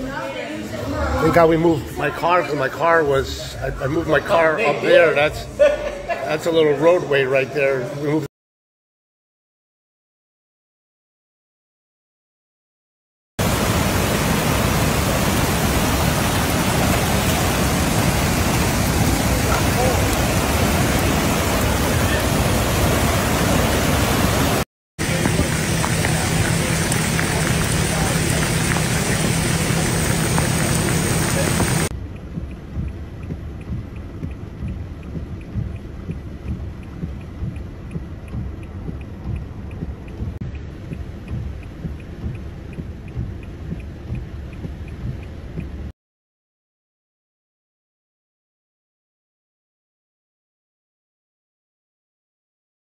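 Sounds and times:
rushing floodwater: 0:13.4 - 0:31.9
rain: 0:13.4 - 0:45.9.

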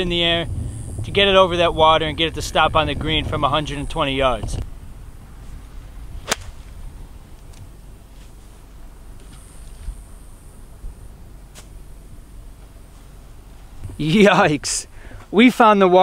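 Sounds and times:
low background rumble: 0:00.0 - 0:15.5
golf club striking ball: 0:06.2 - 0:06.8.

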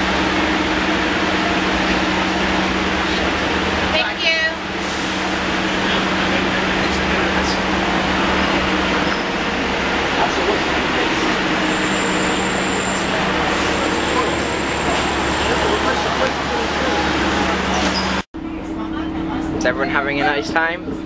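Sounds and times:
bus engine idling: 0:00.0 - 0:21.0
street traffic noise: 0:00.0 - 0:21.0.

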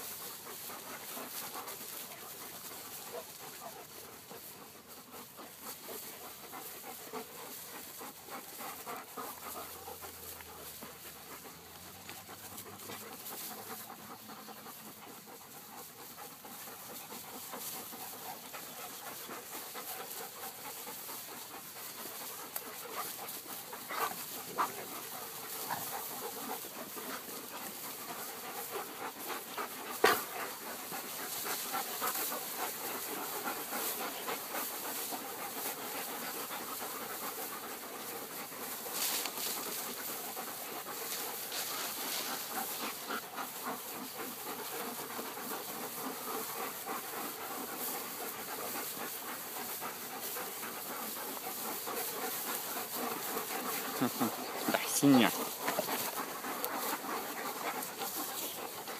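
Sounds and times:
dogs panting: 0:00.0 - 0:58.9
rustling: 0:00.0 - 0:58.9.

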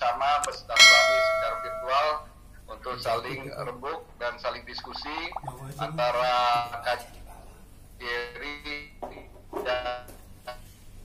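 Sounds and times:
bright bell ding: 0:00.8 - 0:02.1.

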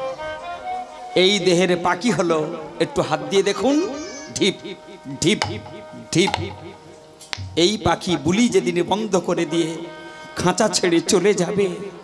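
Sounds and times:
steady held instrument tone: 0:02.9 - 0:11.1.

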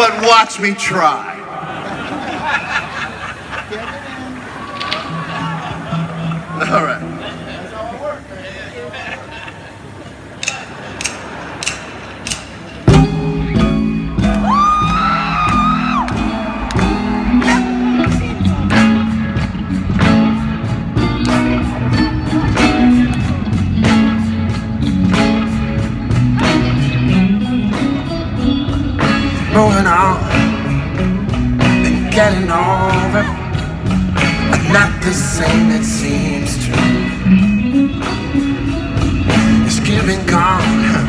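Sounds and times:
crowd noise: 0:00.0 - 0:41.0
sharp clicks: 0:10.4 - 0:12.6
electric guitar: 0:12.8 - 0:41.0
electric bass: 0:12.9 - 0:41.0.

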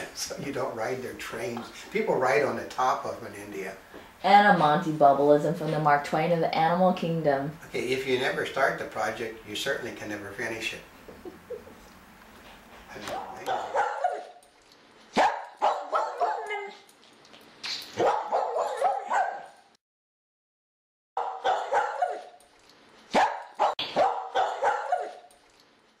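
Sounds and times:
small dog barking and yipping: 0:13.0 - 0:14.5, 0:15.1 - 0:17.0, 0:17.9 - 0:19.6, 0:21.2 - 0:22.4, 0:23.1 - 0:25.3.

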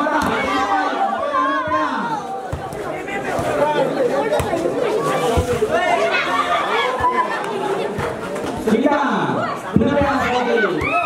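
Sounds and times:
many voices talking and calling: 0:00.0 - 0:11.0.

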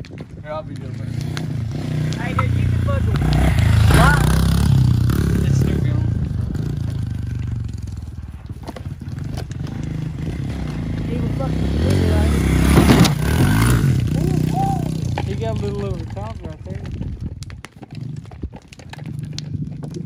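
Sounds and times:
pit bike engine revving: 0:00.5 - 0:17.0.

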